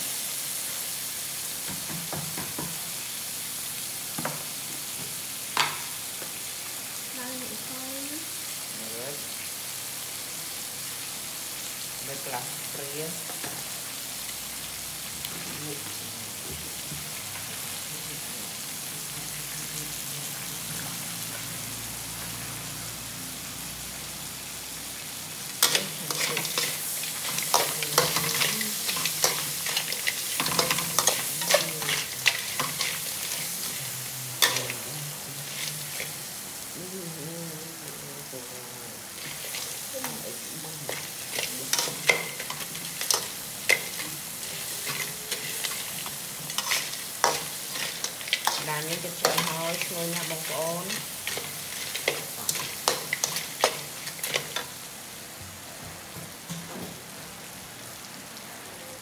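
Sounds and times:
crabs sizzling in hot oil: 0.0s - 59.0s
metal spatula scraping a pan: 40.8s - 54.7s.

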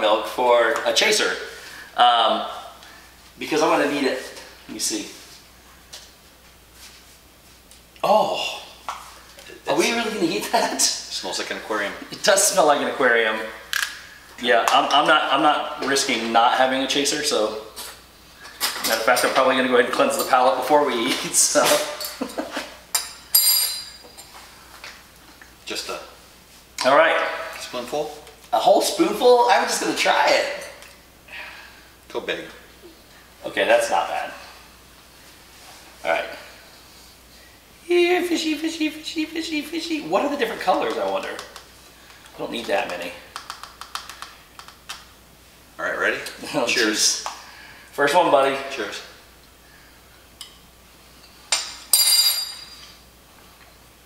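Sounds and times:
metal spoon clinking: 22.9s - 24.1s, 51.5s - 52.9s.

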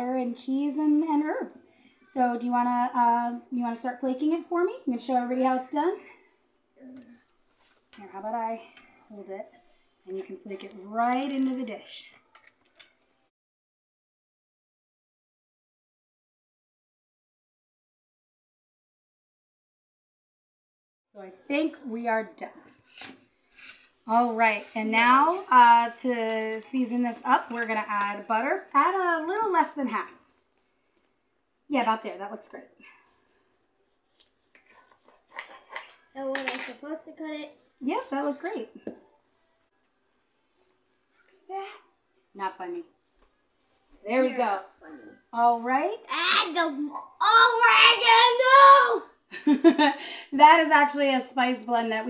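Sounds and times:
soft paper rustles: 7.1s - 9.0s, 9.6s - 13.3s, 33.8s - 36.1s.

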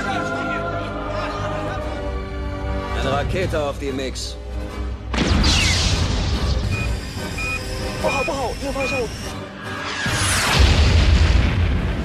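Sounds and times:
dramatic music: 0.0s - 12.0s
short high electronic beeps: 6.7s - 9.4s.

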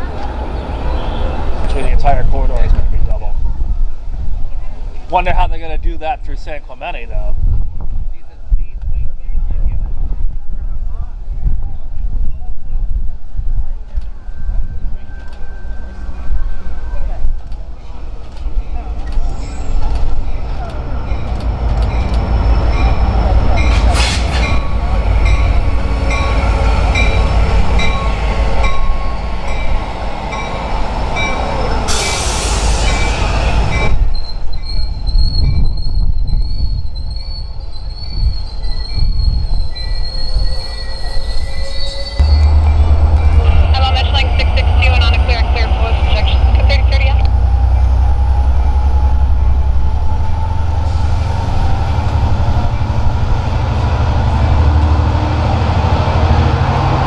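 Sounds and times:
train rumbling past: 0.0s - 57.0s
wavering wheel squeal: 31.3s - 43.5s
loud hiss: 31.9s - 33.4s.

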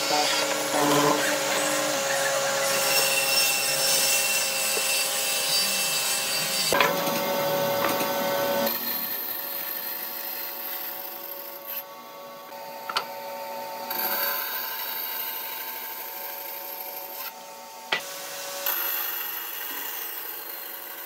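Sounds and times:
mortiser motor and chisel plunging: 0.0s - 11.7s
bandsaw cutting wood: 0.0s - 12.1s, 13.7s - 21.0s.

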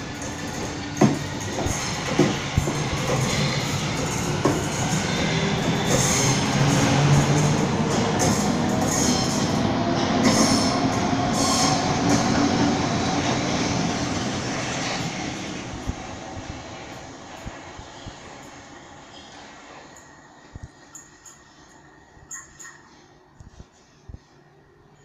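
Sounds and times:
wheels clattering on rails: 0.0s - 16.1s.

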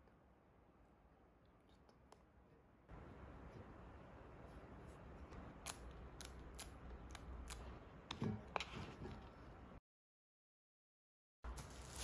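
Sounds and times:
plastic film crackling: 11.5s - 12.0s.

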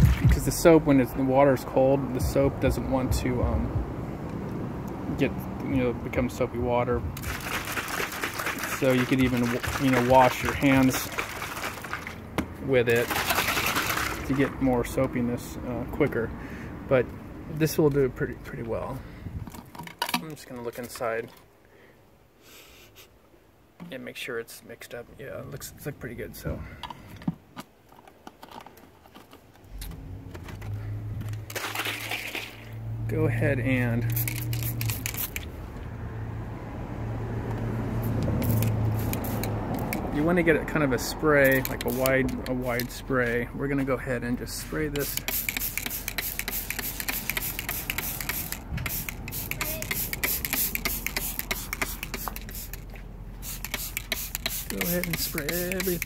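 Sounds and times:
spray bottle spritzing: 7.2s - 12.2s, 13.0s - 14.4s, 34.0s - 35.5s, 38.0s - 40.1s, 41.4s - 42.9s, 45.0s - 56.0s
spray bottle clicks and taps: 45.0s - 56.0s.

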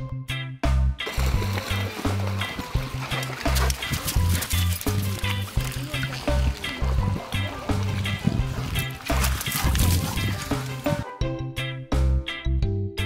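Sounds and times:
background music with bass line: 0.0s - 13.0s
water splashing: 1.0s - 11.0s.

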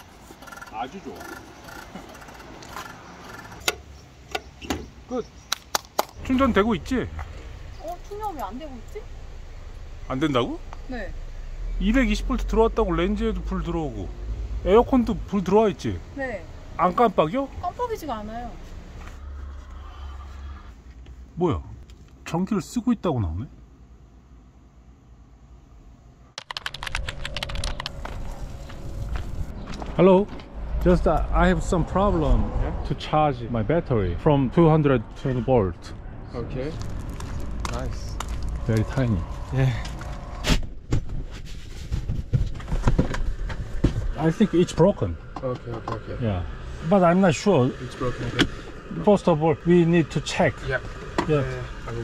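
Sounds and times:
steady background noise: 0.0s - 52.0s
quick run of sharp clicks: 26.4s - 28.0s.

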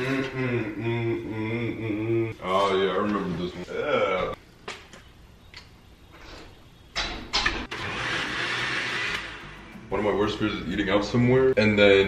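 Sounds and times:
countertop blender running: 7.7s - 9.6s.

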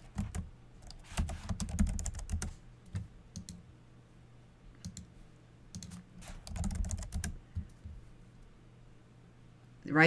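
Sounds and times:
typing on computer keyboard: 0.0s - 3.6s, 4.8s - 5.1s, 5.7s - 7.7s.

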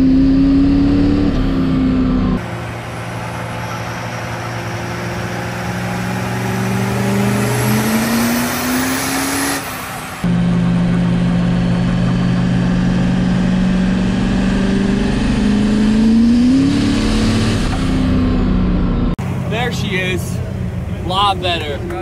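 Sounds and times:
diesel truck engine revving: 0.0s - 22.0s.

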